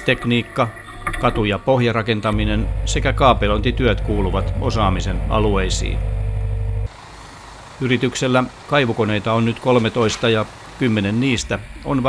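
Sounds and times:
excavator engine and hydraulics: 2.3s - 12.0s
faint engine idling: 2.3s - 12.0s.

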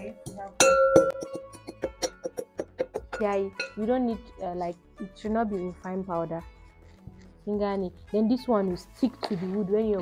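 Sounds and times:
metal pestle pounding in mortar: 0.0s - 3.8s.

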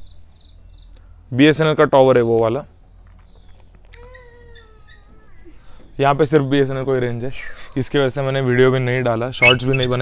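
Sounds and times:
faint drawn-out animal cry: 3.8s - 5.9s.

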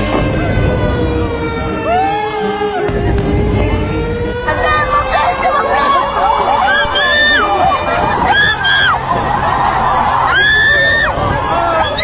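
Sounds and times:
steady siren tone: 0.0s - 12.0s
street noise: 0.0s - 12.0s
people shouting: 4.5s - 12.0s.

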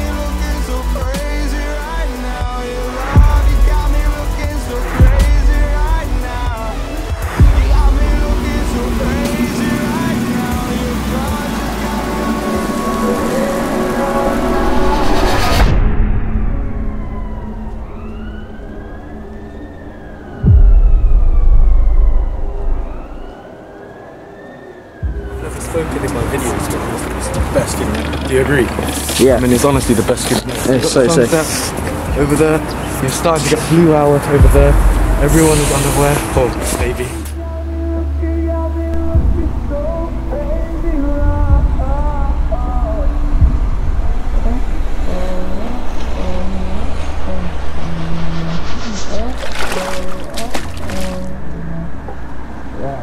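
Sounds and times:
deep steady bass: 0.0s - 23.3s, 25.0s - 28.7s, 33.5s - 52.0s
loud deep rumble: 3.2s - 23.4s, 38.9s - 52.0s
siren wailing: 8.5s - 27.5s.

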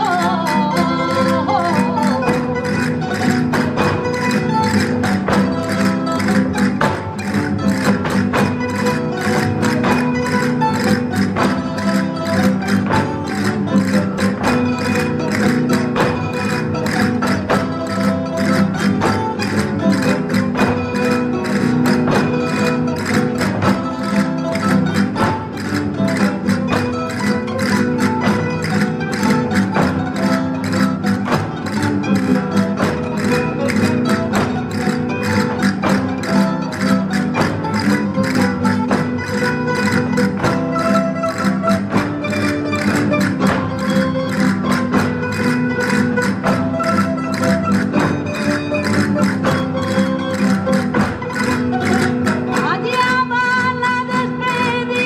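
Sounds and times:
folk dance music with plucked strings: 0.0s - 55.0s.

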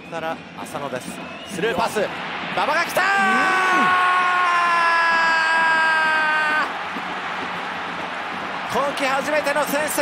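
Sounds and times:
stadium crowd cheering: 0.0s - 10.0s
commentator shouting: 2.6s - 6.7s.

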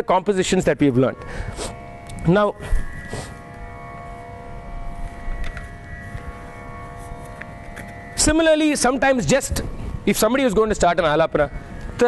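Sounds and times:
steady drone of held pitches: 0.0s - 12.0s.

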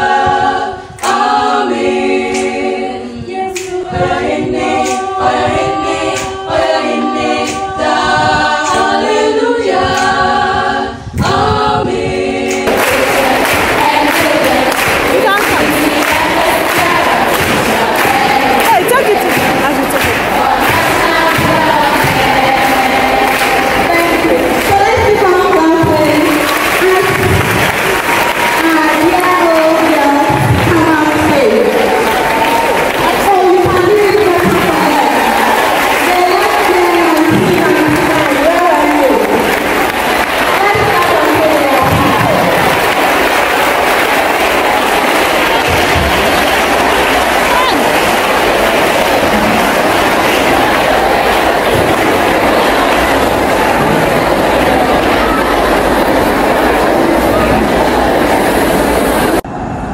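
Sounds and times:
crowd singing and calling: 0.0s - 59.9s
crowd chatter and cheering: 3.5s - 59.9s.

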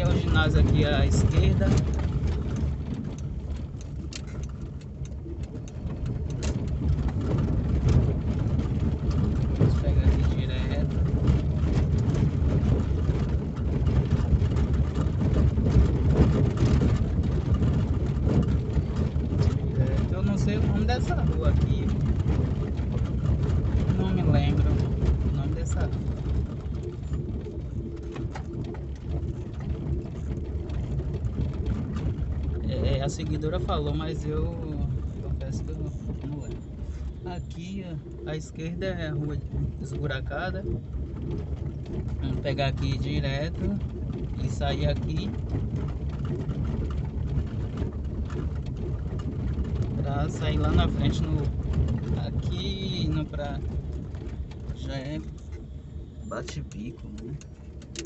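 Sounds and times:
car engine and tyre rumble: 0.0s - 58.0s
knocks and rattles: 0.0s - 58.0s.

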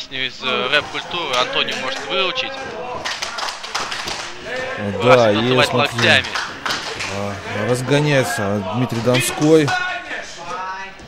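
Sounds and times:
man commentating: 4.5s - 11.0s.

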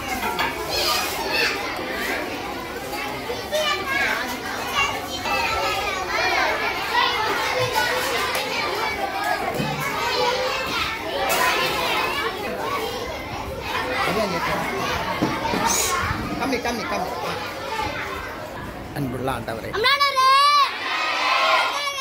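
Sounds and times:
children chattering and calling out: 0.0s - 22.0s.

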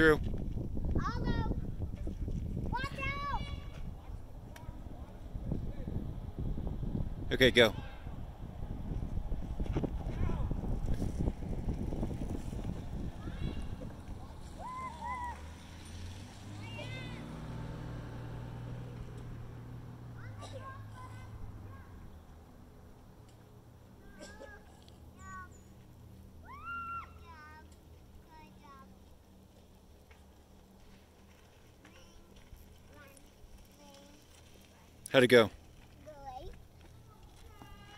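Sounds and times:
faint outdoor ambience: 0.0s - 37.9s.

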